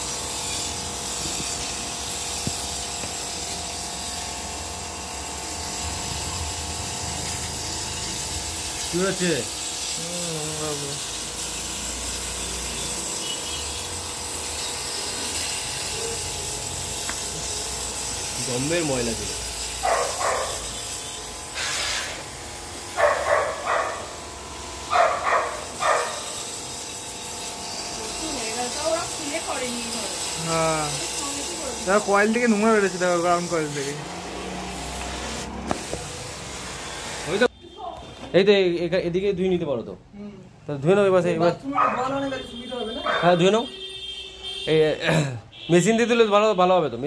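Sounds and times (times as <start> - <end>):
pressure washer spraying metal: 0.0 - 38.9, 41.4 - 45.7.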